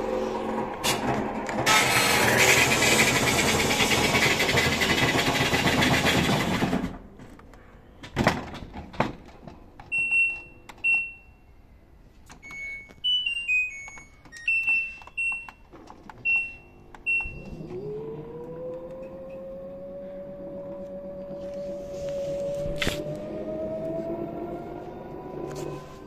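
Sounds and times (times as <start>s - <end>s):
washing machine motor whine: 0.0s - 7.0s, 16.2s - 26.0s
washing machine key-press beeps: 9.9s - 11.4s, 12.3s - 17.5s
descending run of tones: 17.3s - 26.0s.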